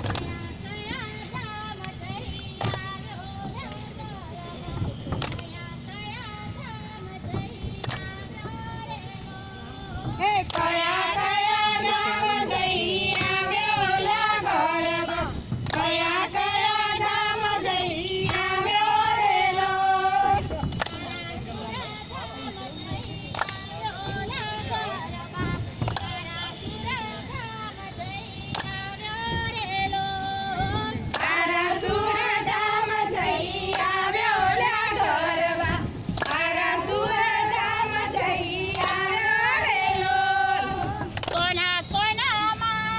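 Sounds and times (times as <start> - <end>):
high-pitched voices singing: 22.8 - 41.4.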